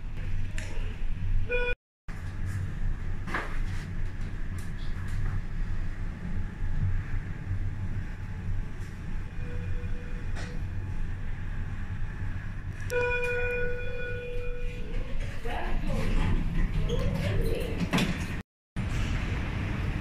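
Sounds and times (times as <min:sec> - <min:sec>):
lift car humming and rumbling: 0:00.0 - 0:20.0.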